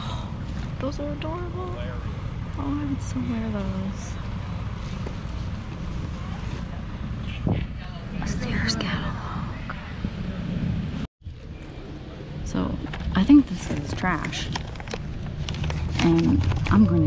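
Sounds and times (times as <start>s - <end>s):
wind rumble on microphone: 4.2s - 17.0s.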